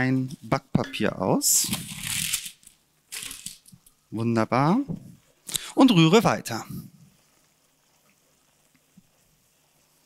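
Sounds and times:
baking paper crinkling: 1.5s - 3.7s.

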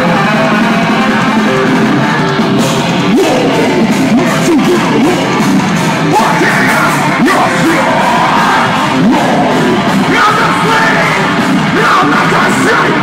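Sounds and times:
distorted electric guitars: 0.0s - 13.0s
fast hard-hit drums: 0.0s - 13.0s
screamed lead vocal: 3.0s - 5.4s, 6.1s - 13.0s.

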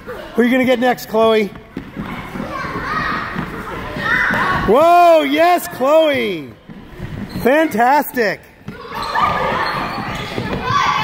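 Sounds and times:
footsteps on wooden floor: 1.2s - 4.7s, 6.6s - 7.5s
children laughing and calling out: 8.7s - 11.0s.

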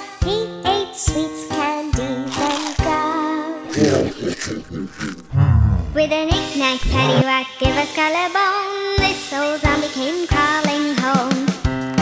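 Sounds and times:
cartoon gulping sounds: 2.3s - 3.0s, 3.7s - 6.2s, 6.8s - 7.3s
low cartoon growl: 3.7s - 6.2s, 6.8s - 7.3s.

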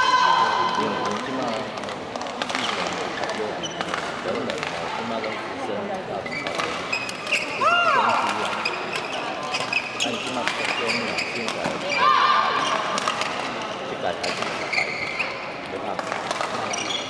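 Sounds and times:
murmur of voices: 0.0s - 17.0s
court shoes squeaking: 0.8s - 17.0s.

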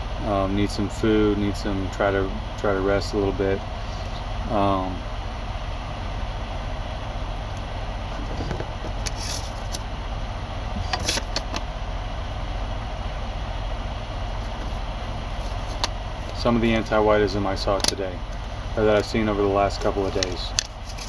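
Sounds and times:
low engine rumble: 0.0s - 21.0s.

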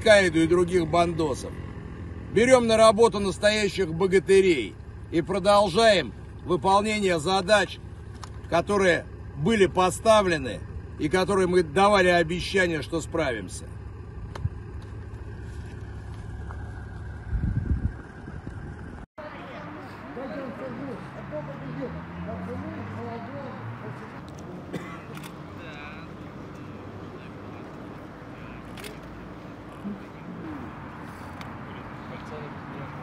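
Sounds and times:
wind rumbling on microphone: 16.3s - 19.1s.

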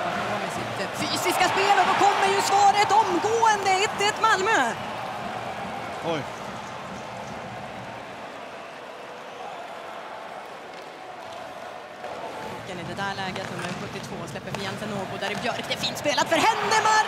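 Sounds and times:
arena crowd din: 0.0s - 17.0s.

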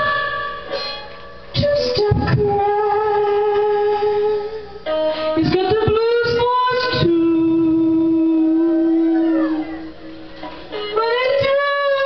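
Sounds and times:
woman singing blues: 0.0s - 12.0s.

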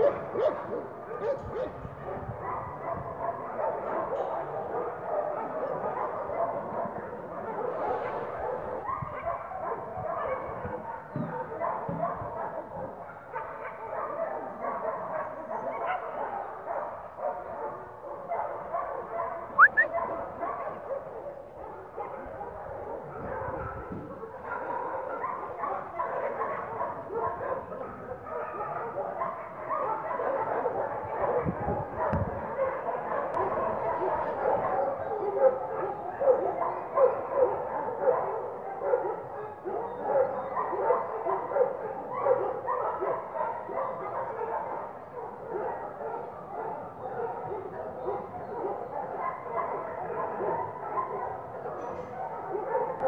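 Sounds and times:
dogs barking and yipping: 0.0s - 53.0s.

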